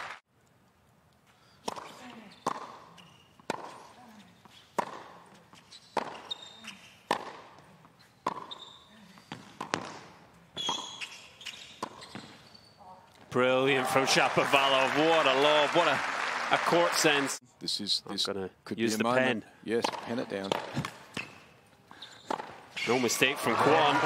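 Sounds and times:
shoe squeaks: 1.4 - 7.1, 7.9 - 13.1, 20.3 - 23.1
racket hitting tennis ball: 1.6 - 4.0, 4.6 - 12.4, 19.8 - 21.3, 22.3 - 23.0
tennis ball bouncing: 1.6 - 12.5, 19.8 - 21.5, 22.2 - 22.8.

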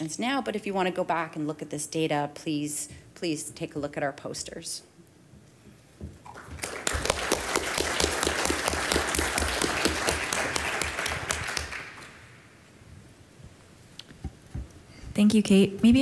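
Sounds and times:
audience applauding: 6.3 - 12.3.

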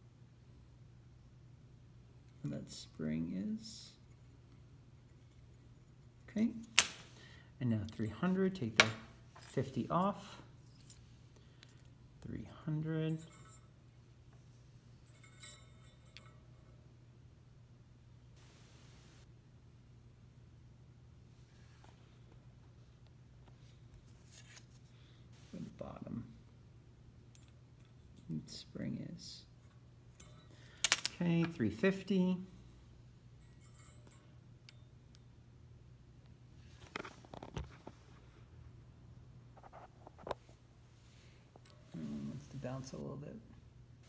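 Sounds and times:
low steady hum: 0.0 - 44.0
metallic clink with ringing: 13.1 - 13.8, 15.0 - 16.8, 33.4 - 35.2
short metallic clicks: 30.8 - 31.2.

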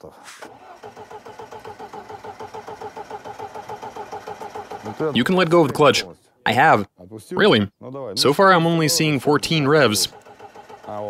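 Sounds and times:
starter motor cranking engine: 0.0 - 5.8, 9.4 - 11.0.

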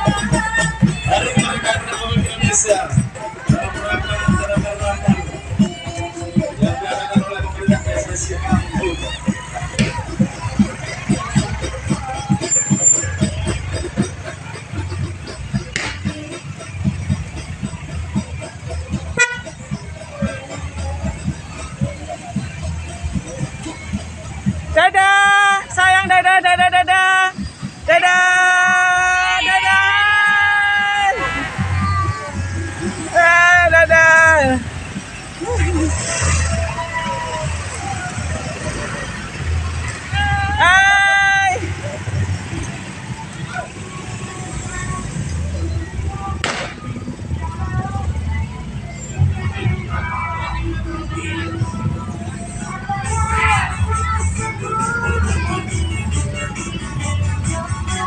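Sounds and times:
engines: 0.0 - 58.0
music: 0.0 - 58.0
voices: 0.0 - 58.0
vehicle horn toot: 19.2 - 19.5.

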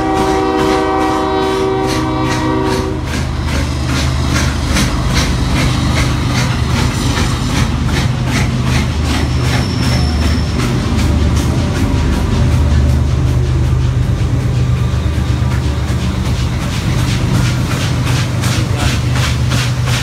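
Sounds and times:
steam locomotive chime whistle: 0.0 - 3.3, 9.2 - 11.0
steam locomotive exhaust chuffs: 0.0 - 20.0
steady low drone: 10.8 - 20.0.

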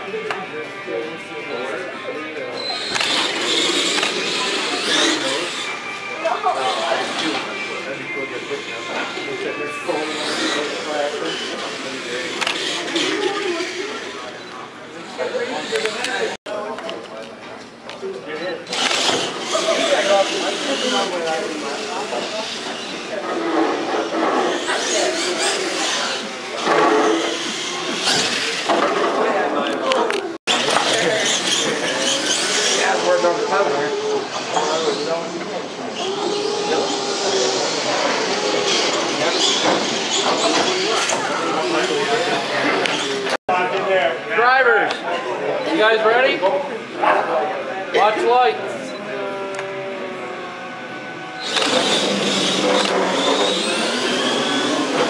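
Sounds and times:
indistinct crowd chatter: 0.0 - 55.0
rc trucks driving: 2.6 - 16.4, 18.6 - 43.4, 49.2 - 55.0.

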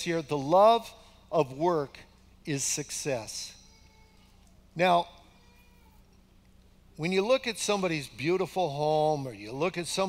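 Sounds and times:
man speaking: 0.0 - 3.6, 4.8 - 5.2, 7.0 - 10.0
low steady hum: 0.0 - 10.0.

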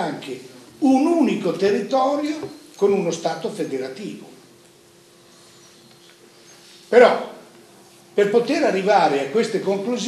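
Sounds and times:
man talking: 0.0 - 4.4, 6.9 - 7.4, 8.2 - 10.0
thin steady hum: 0.0 - 10.0.

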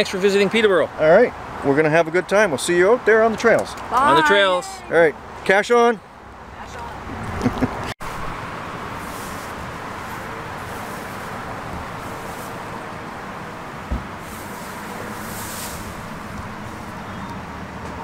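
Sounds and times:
traffic noise: 0.0 - 18.0
vehicles passing: 0.0 - 18.0.

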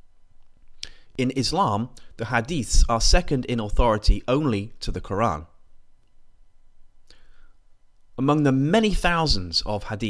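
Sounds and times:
faint low hum: 0.0 - 10.0
person inhaling: 0.8 - 1.2, 7.0 - 7.6.

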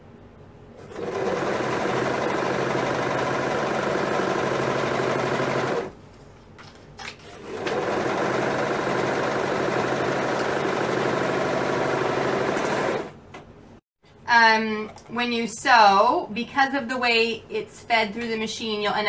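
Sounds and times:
overlock machine stitching: 0.8 - 6.0, 7.2 - 13.2.

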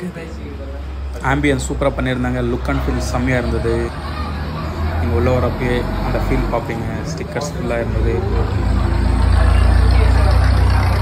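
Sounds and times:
faint voices: 0.0 - 11.0
loud low machinery rumble: 1.7 - 11.0.

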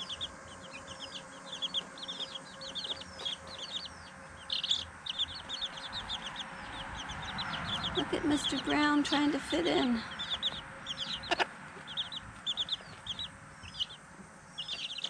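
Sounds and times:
chicks peeping: 0.0 - 15.0.

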